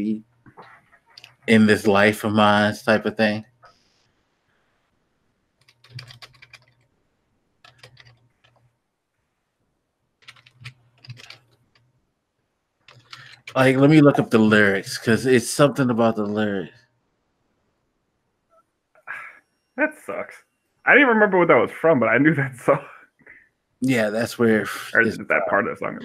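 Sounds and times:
faint low hum: 0:00.0 - 0:03.6, 0:12.8 - 0:18.4, 0:19.1 - 0:26.0.

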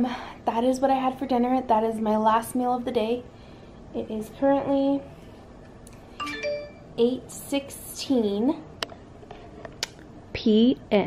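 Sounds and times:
rising chime tones: 0:06.2 - 0:07.0.

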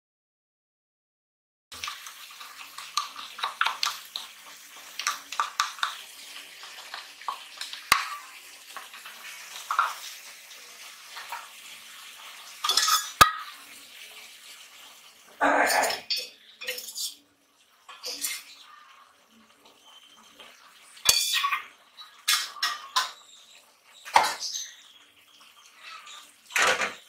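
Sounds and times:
pot clattering: 0:06.9 - 0:08.4, 0:12.6 - 0:13.7, 0:15.7 - 0:17.2, 0:17.9 - 0:18.5, 0:21.0 - 0:23.3, 0:24.0 - 0:24.8.

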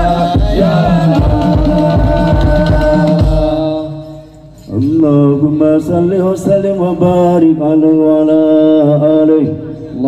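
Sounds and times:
drum beats: 0:00.0 - 0:05.0
devotional chanting: 0:00.0 - 0:10.0.

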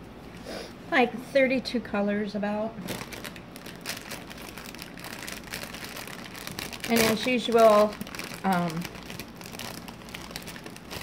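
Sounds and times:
plastic bag crinkling: 0:02.8 - 0:11.0
small bags shifting together: 0:02.8 - 0:11.0.

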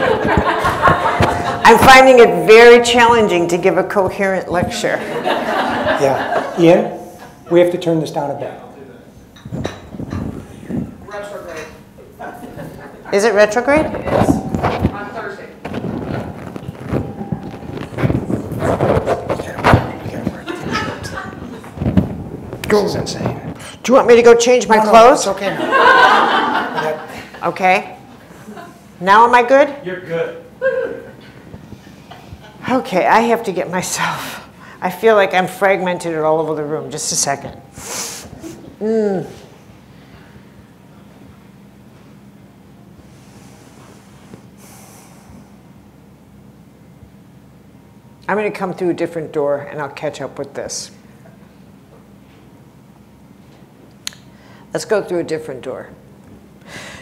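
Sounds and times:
lapel microphone rustling: 0:00.0 - 0:06.3, 0:09.5 - 0:11.1, 0:13.4 - 0:25.4, 0:31.3 - 0:33.5
room hum: 0:00.0 - 0:57.0
sharp breath through nose: 0:37.8 - 0:38.6, 0:43.3 - 0:45.6.

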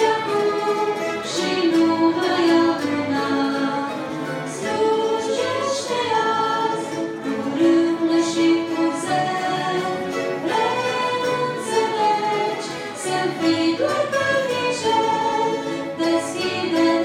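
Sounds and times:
string orchestra playing: 0:00.0 - 0:17.0.

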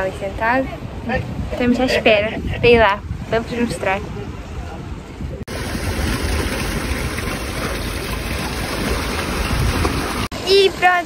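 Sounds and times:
sea surf on rocky shore: 0:05.5 - 0:11.0.

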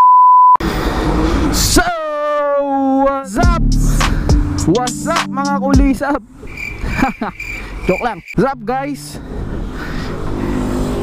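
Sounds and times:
vehicle engine: 0:00.6 - 0:01.8, 0:08.8 - 0:11.0.

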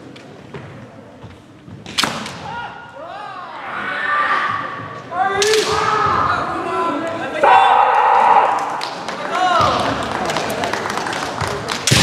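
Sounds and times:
fencers shouting: 0:03.6 - 0:08.8.

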